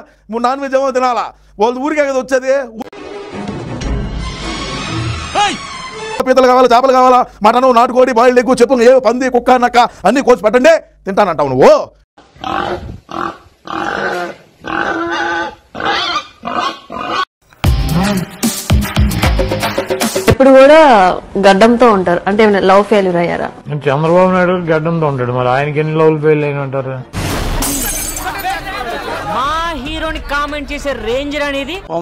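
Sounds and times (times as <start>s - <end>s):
pig calling: 12.4s - 17.3s
glass shattering: 27.2s - 28.8s.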